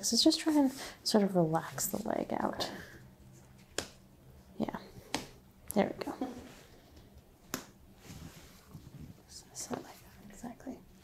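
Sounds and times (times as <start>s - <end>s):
rustling of hands and clothing: 6.0s - 10.8s.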